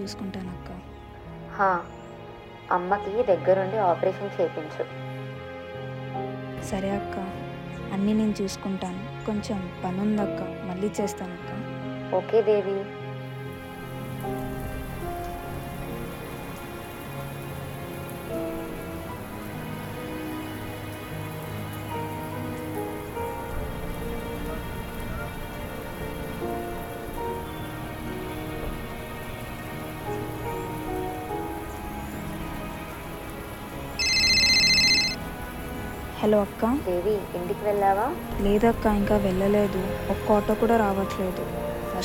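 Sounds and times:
soft sustained music notes: 0:00.0 - 0:42.0
heavy rain falling: 0:13.2 - 0:42.0
phone ringtone: 0:34.0 - 0:35.2.

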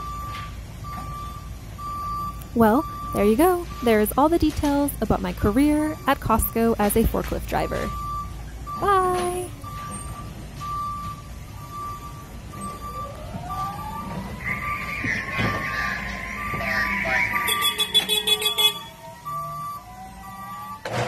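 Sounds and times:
forklift warning beeper: 0:00.0 - 0:20.9.

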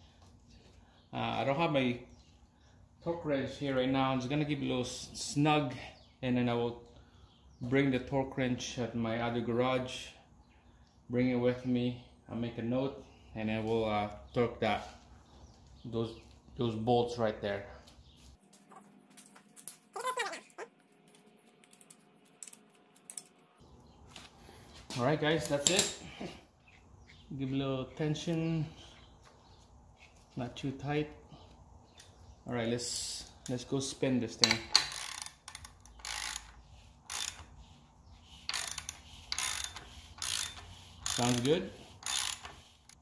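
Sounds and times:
ratchet wrench pawl clicking: 0:34.4 - 0:37.6, 0:38.3 - 0:43.0.

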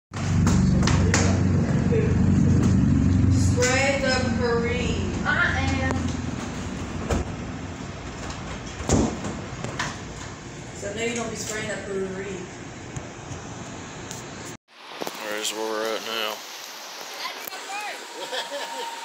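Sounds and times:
vehicle engine rumbling: 0:00.1 - 0:11.1
voices talking: 0:00.6 - 0:06.2
thump: 0:07.0 - 0:07.4.

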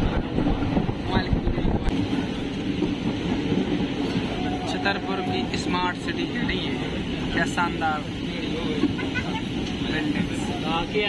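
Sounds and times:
train running rumble: 0:00.0 - 0:11.0
people's voices: 0:04.1 - 0:11.0.

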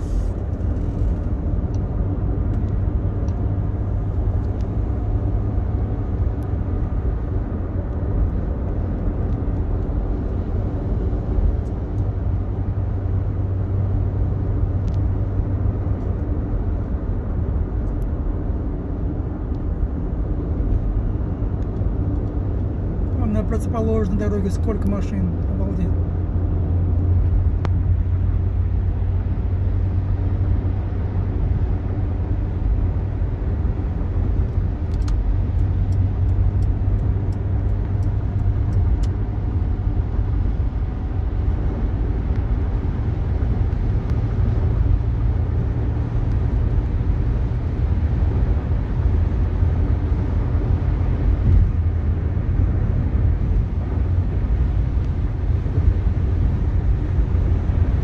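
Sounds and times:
car cabin road and engine rumble: 0:00.0 - 0:58.0.

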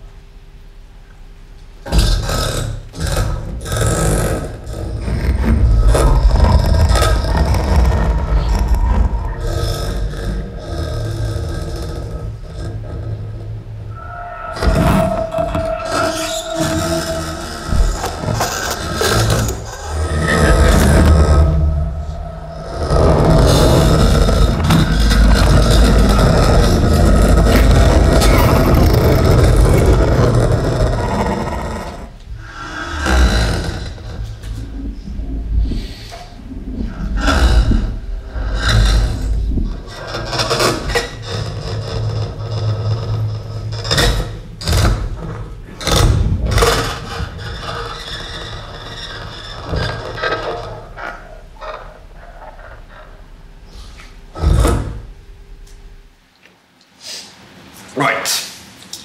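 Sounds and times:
electronic noise layers: 0:00.0 - 0:59.0.

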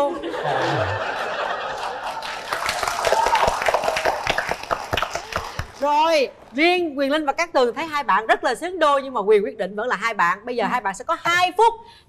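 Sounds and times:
studio audience laughing: 0:00.0 - 0:02.6
audience clapping: 0:01.5 - 0:06.0.

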